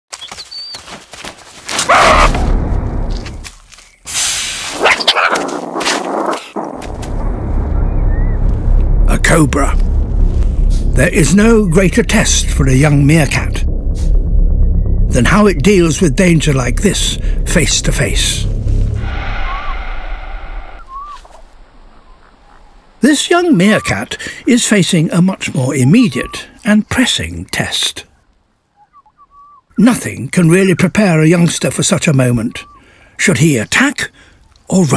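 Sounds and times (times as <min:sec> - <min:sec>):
faint outdoor ambience: 0:00.1 - 0:34.9
meerkat barking calls: 0:01.9 - 0:02.3, 0:04.8 - 0:05.5
low rumble: 0:02.2 - 0:03.6, 0:06.6 - 0:23.0
small animal chirping call: 0:20.8 - 0:21.4.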